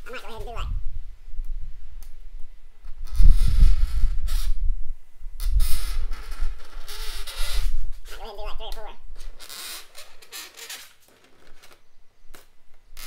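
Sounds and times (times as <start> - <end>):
scraping on acrylic sheet: 5.4 - 8.2, 9.2 - 11.8.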